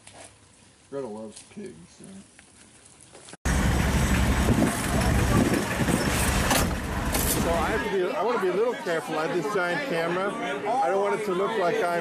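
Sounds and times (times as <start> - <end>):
car engine and road noise: 3.5 - 7.9.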